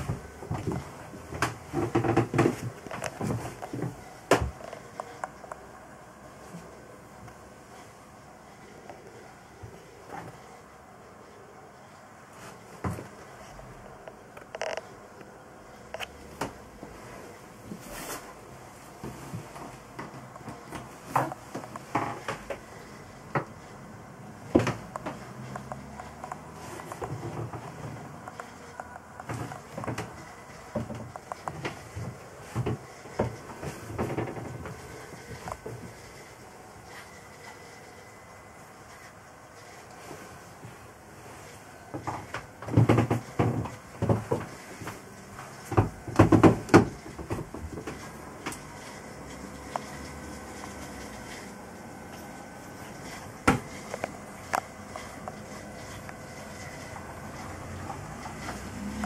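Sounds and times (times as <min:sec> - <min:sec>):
knocks and thumps on wood: 0:45.6 - 0:48.0.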